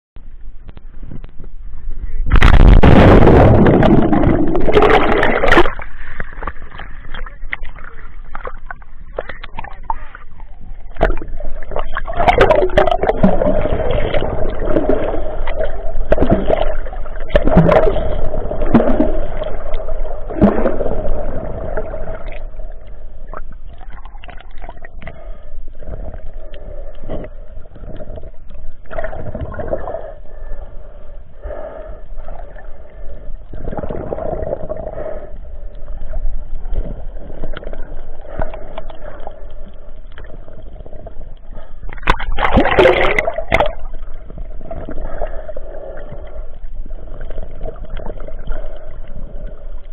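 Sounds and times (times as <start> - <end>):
low hum: 0.2 - 49.9
muffled underwater water rushing: 0.2 - 49.9.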